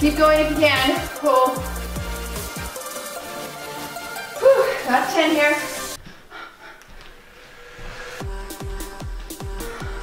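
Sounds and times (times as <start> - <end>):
background music: 0.0 - 6.0, 7.2 - 10.0
woman breathing hard: 6.0 - 10.0.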